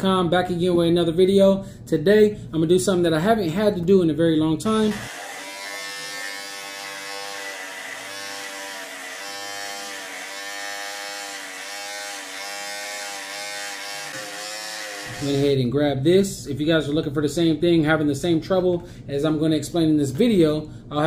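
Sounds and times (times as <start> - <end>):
electric hair clipper buzzing: 4.8 - 15.6.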